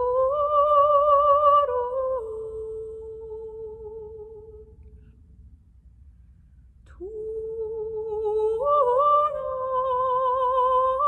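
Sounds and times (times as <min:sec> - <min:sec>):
woman singing sustained note: 0:00.0 - 0:04.7, 0:06.9 - 0:11.0.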